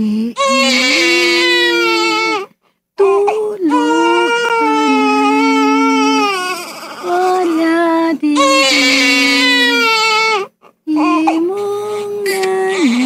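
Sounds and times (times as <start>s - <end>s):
baby crying: 0.4s - 13.0s.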